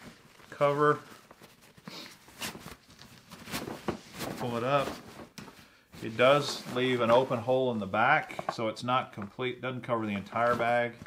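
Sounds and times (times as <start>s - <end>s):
fabric rustling: 0.0s - 9.3s, 10.0s - 11.0s.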